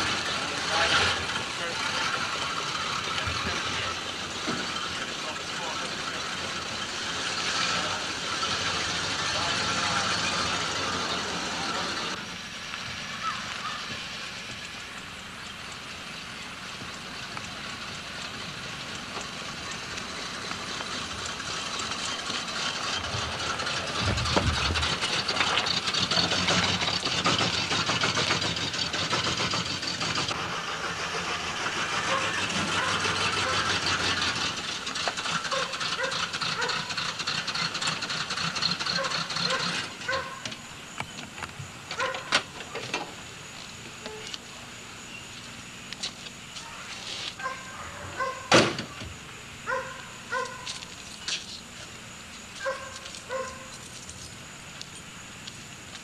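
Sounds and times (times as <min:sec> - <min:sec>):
car engine driving past: 0:00.0 - 0:40.2
steady hiss: 0:48.5 - 0:56.0.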